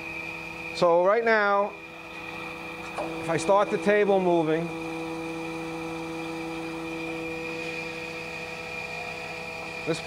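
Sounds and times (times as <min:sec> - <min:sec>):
grinder machine humming: 0:00.0 - 0:10.0.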